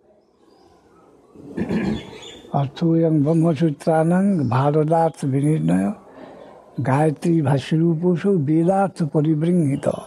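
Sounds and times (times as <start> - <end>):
man speaking: 2.5 - 6.0, 6.8 - 10.0.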